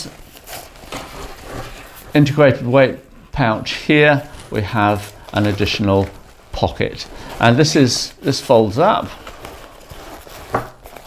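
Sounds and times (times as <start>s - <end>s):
nylon fabric rustling: 0.0s - 11.0s
zip being worked: 9.2s - 11.0s.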